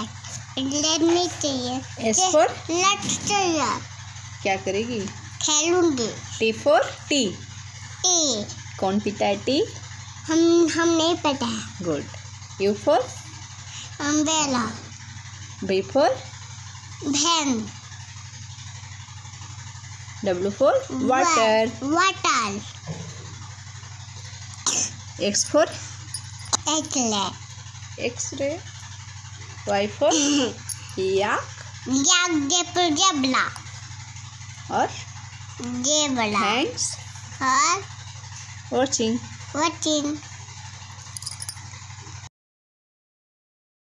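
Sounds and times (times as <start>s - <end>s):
steady low hum: 0.0s - 40.2s.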